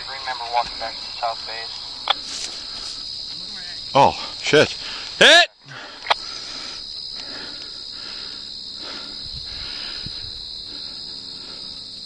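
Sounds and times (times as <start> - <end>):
faint voices: 0.0 - 5.8
crickets chirping: 0.0 - 12.0.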